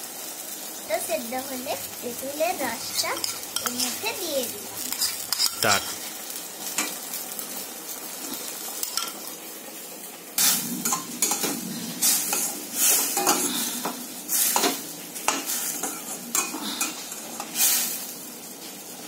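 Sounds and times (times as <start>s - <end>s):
frying sizzle: 0.0s - 19.0s
spatula scraping a pan: 2.2s - 6.0s.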